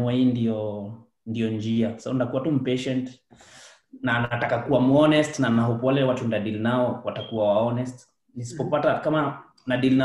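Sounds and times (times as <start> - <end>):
man speaking over video call: 0.0 - 10.0
intake of breath: 3.3 - 3.9.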